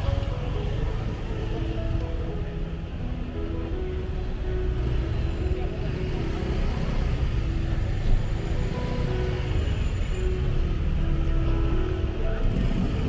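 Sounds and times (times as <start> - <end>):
music playing: 0.0 - 13.0
motorcycle and car engines: 3.7 - 13.0.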